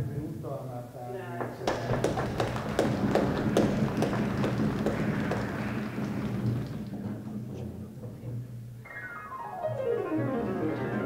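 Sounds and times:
stamping on wooden stage: 1.4 - 8.4.

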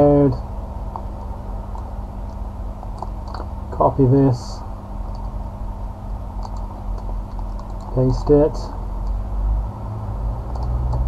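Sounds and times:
faint constant hum: 0.0 - 11.0
low background rumble: 0.0 - 11.0
computer mouse clicks: 1.7 - 3.5, 6.4 - 7.9, 10.5 - 11.0.

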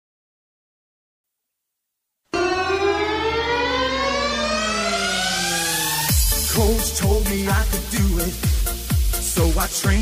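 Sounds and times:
synthesizer sweep: 2.3 - 9.6.

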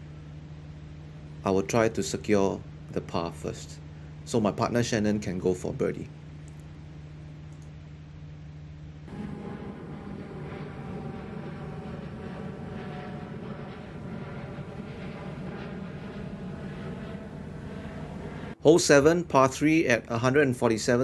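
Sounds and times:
distant engine drone: 0.0 - 8.0, 8.8 - 21.0.

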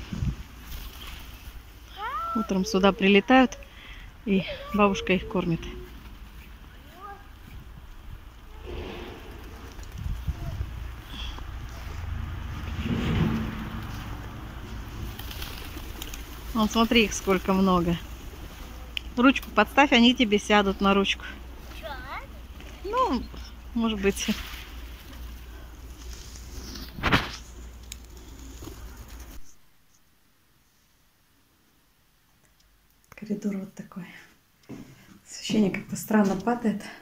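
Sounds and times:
wind on microphone: 0.0 - 0.6, 7.4 - 11.0
outdoor noise with low rumble: 0.0 - 37.0.

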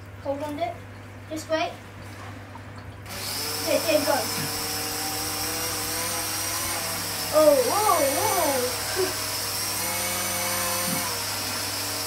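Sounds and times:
toy motor humming with high whine: 3.0 - 12.0.

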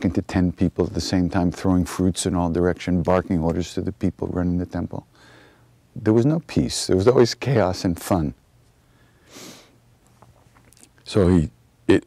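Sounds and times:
low room hum: 0.0 - 12.0
man breathing in: 5.1 - 5.8, 8.8 - 9.8.

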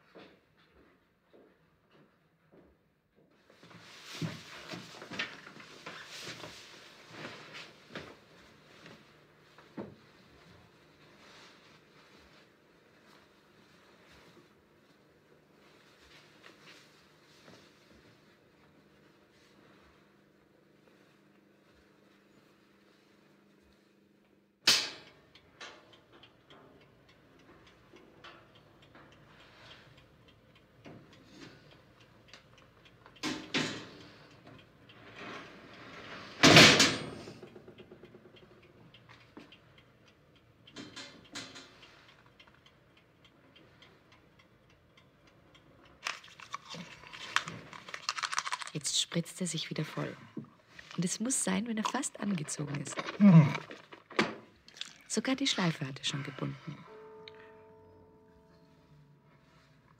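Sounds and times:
objects clicking and knocking: 46.0 - 49.0.

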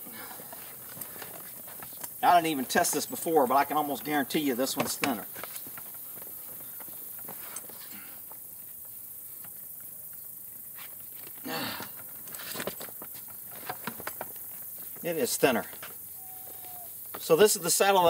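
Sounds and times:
background hiss: 0.0 - 18.0.

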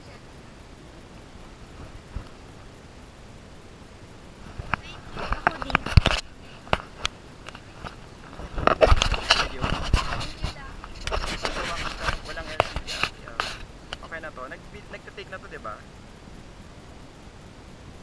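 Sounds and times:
people talking: 0.0 - 0.5, 4.7 - 6.1, 9.2 - 15.8
camera handling knocks and scrapes: 4.5 - 13.6.

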